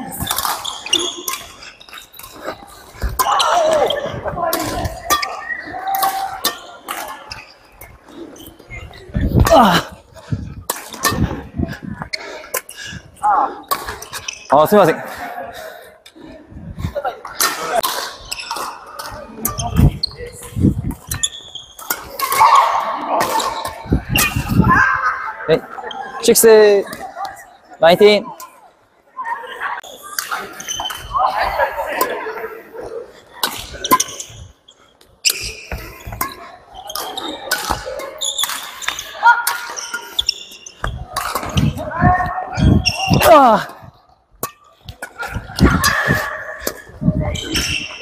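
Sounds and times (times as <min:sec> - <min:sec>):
rackets hitting shuttlecock: 0:00.0 - 0:07.4, 0:10.7 - 0:11.4, 0:13.7 - 0:14.4, 0:17.3 - 0:24.7, 0:33.4 - 0:34.3, 0:35.2 - 0:48.0
shoes squeaking on wooden floor: 0:00.0 - 0:10.0, 0:13.8 - 0:14.6, 0:18.1 - 0:22.7, 0:33.7 - 0:43.4, 0:45.1 - 0:48.0
racket hitting shuttlecock: 0:00.1 - 0:02.4, 0:21.0 - 0:24.6, 0:35.3 - 0:41.9.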